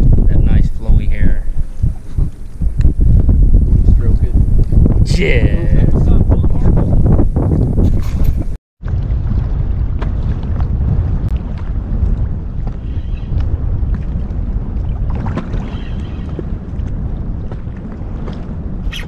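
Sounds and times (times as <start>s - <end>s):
wind rumble on microphone: 0.0s - 19.0s
small water splashes: 13.9s - 19.0s.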